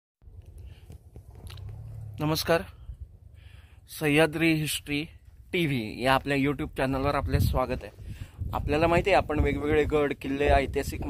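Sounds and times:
wind rumble on microphone: 0:06.6 - 0:11.0.

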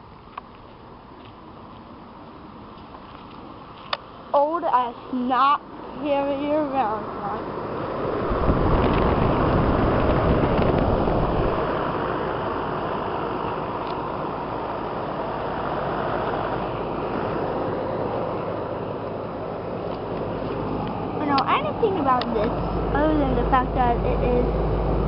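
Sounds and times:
air conditioner fan rushing: 0:05.6 - 0:25.0
wind on microphone: 0:07.0 - 0:25.0.

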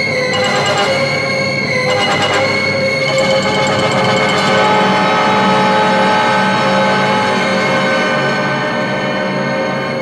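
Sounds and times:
orchestral music with held chords: 0:00.3 - 0:05.4.

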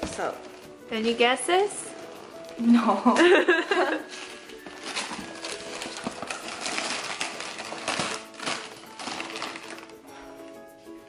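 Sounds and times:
wrapping paper crinkling and tearing: 0:04.0 - 0:10.4.

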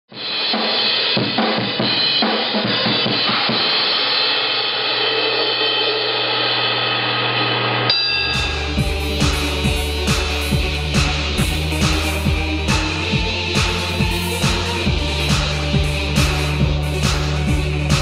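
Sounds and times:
drum and cymbal hits: 0:00.1 - 0:18.0
cymbals ringing: 0:07.9 - 0:10.4
steady low tone: 0:07.9 - 0:16.1.

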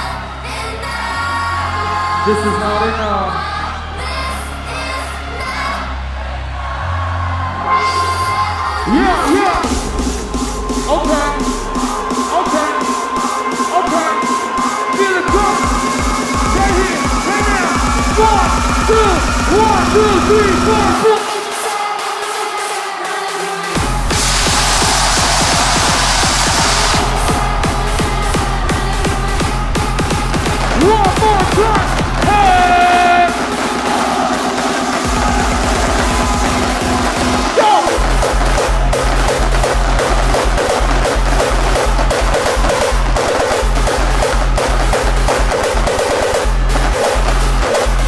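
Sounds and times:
hardstyle dance music: 0:00.0 - 0:48.0
fast drum roll: 0:24.1 - 0:48.0.

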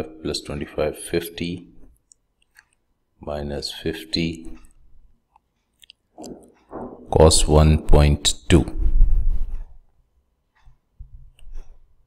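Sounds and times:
person speaking: 0:06.2 - 0:08.9.

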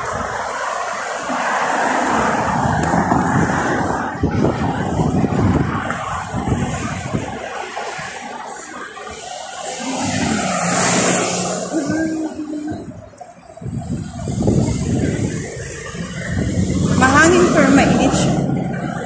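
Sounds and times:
cars passing: 0:00.0 - 0:19.0
wind on microphone: 0:00.0 - 0:19.0.

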